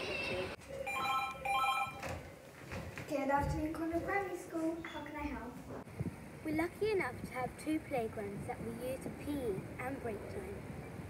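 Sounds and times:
desk telephone ringing: 0.9s - 2.0s.

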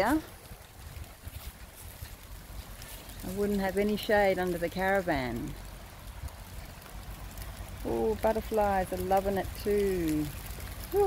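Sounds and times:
light rain patter: 0.0s - 11.0s.

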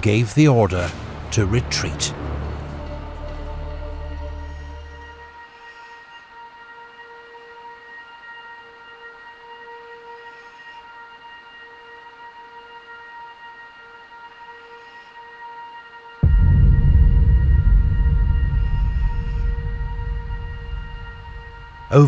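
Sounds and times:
drone note music: 16.2s - 22.0s.

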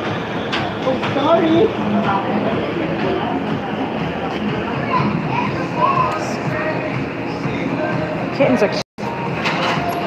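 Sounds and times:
indistinct voices: 0.0s - 8.8s
background chatter: 0.0s - 10.0s.

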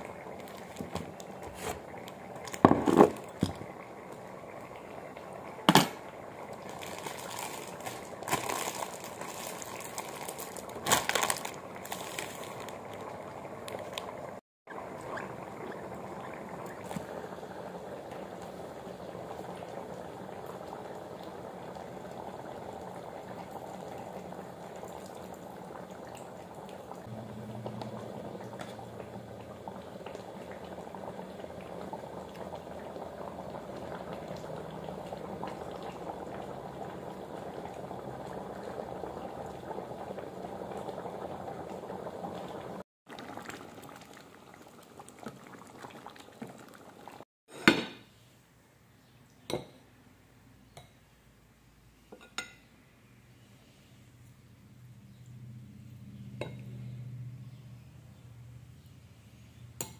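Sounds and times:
pot boiling and bubbling: 0.0s - 47.8s, 54.2s - 59.9s.

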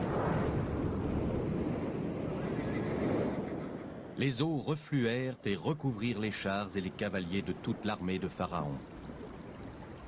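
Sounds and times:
horses whinnying: 2.4s - 4.0s.

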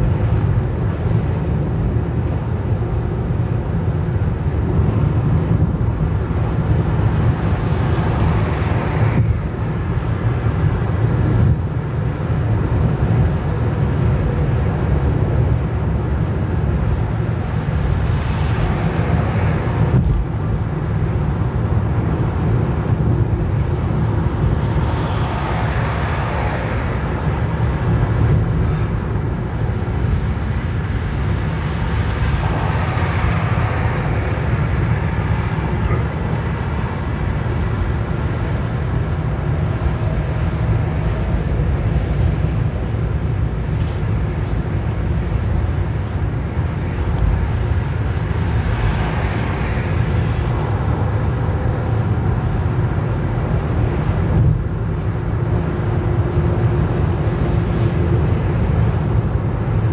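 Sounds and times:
road and engine rumble in car: 0.0s - 59.9s
tyre and wind hiss: 0.0s - 59.9s.

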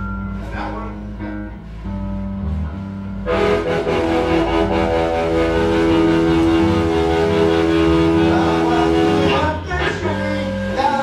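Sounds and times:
electric guitar chord: 3.3s - 9.6s.

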